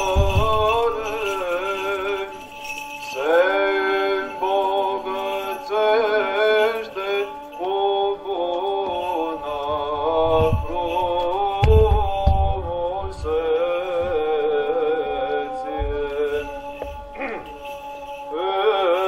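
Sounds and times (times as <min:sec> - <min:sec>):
small bells jingling: 0:00.0 - 0:19.0.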